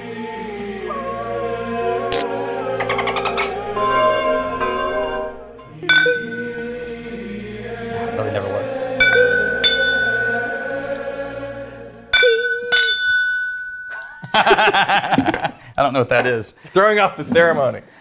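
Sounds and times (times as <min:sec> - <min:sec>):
background music: 0:00.0 - 0:15.7
bottle clinking against glass: 0:05.8 - 0:06.5, 0:09.0 - 0:10.5, 0:12.1 - 0:14.2.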